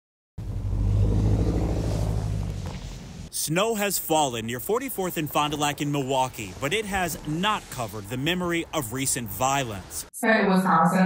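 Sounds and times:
vehicle engine running: 0.4 - 3.3.

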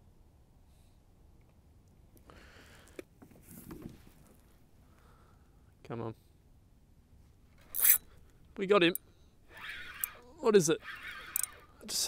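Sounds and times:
fishing rod rasping rub: 7.7 - 8.1, 9.5 - 11.7.

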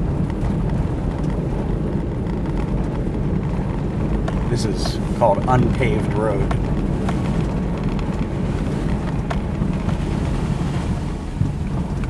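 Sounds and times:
engine and tyre rumble: 0.0 - 12.0.

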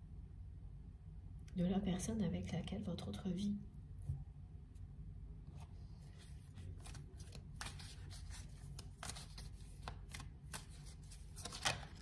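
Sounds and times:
cards being shuffled: 5.6 - 12.0.

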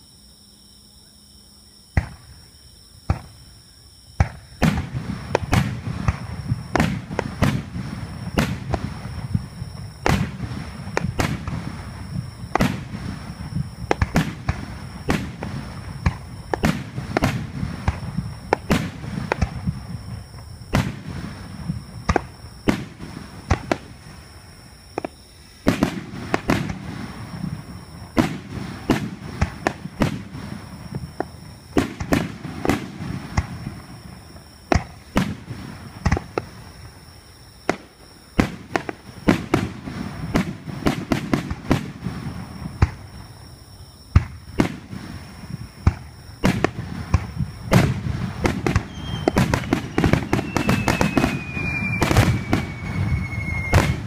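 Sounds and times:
firework shells bursting: 45.8 - 54.0.

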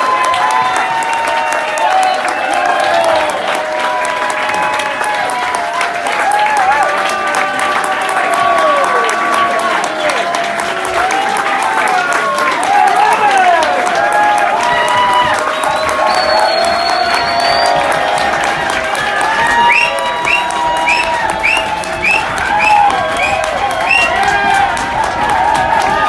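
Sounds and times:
audience applauding: 0.0 - 26.0
voices cheering and talking: 0.0 - 26.0.

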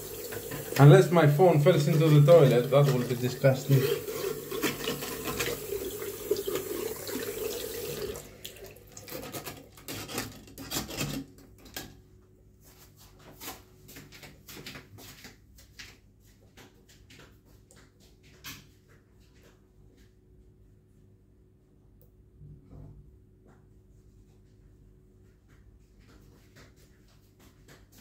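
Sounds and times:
tap water running into sink: 0.0 - 9.8.

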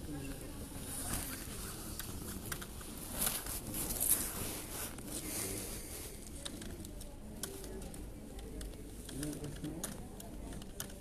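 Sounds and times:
faint low murmur: 0.0 - 11.0
typing on computer keyboard: 6.4 - 11.0.

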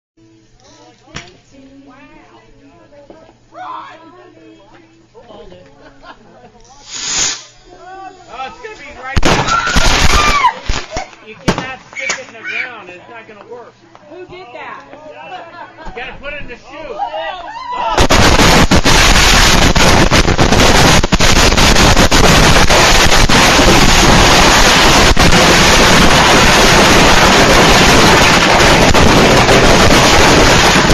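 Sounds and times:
firework hiss: 6.7 - 12.3, 18.0 - 30.9
sharp firework crack: 6.8 - 7.6, 9.1 - 12.4, 17.9 - 30.9
fireworks crackling bangs: 8.6 - 12.4, 18.0 - 30.9.

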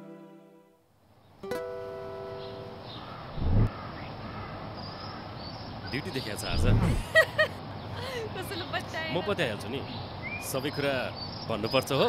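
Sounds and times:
open-air background noise: 0.0 - 12.0
plucked-string chord: 1.4 - 2.9.

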